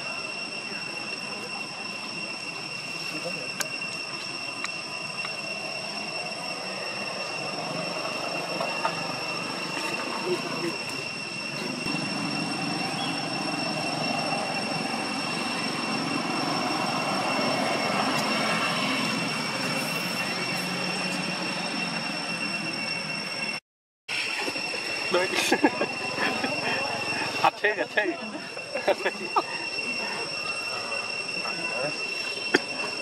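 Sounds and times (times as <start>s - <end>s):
steady high-pitched whine: 0.0s - 33.0s.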